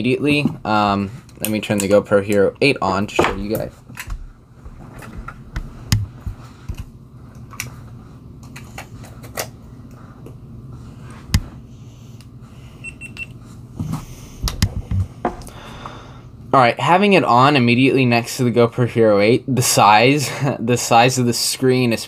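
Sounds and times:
steady low hum: 0.0s - 22.0s.

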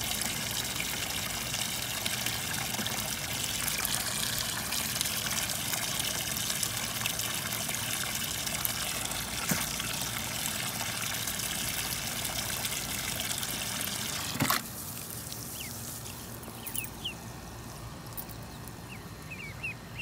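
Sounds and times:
hose water splashing into tub: 0.0s - 16.6s.

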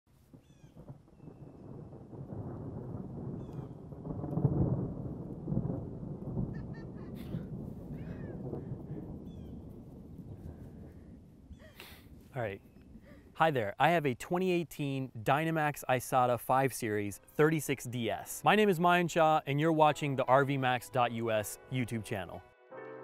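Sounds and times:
low rumble: 0.9s - 13.4s.

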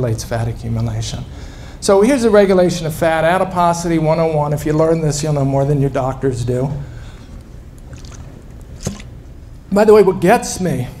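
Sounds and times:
low room and microphone rumble: 0.0s - 11.0s.

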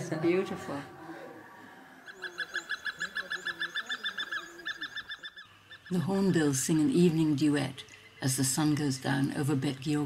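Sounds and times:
hornbills calling: 0.0s - 6.5s.

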